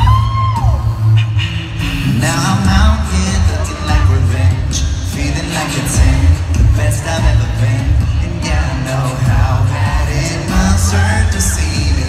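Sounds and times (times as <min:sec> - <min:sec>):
sung bass line: 0:00.0 - 0:12.0
vocal beatbox percussion: 0:00.0 - 0:12.0.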